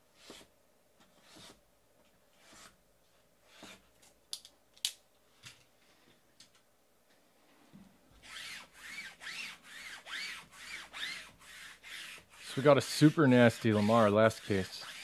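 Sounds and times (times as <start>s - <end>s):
rhythmic scratching rubbing: 8.3s - 15.0s.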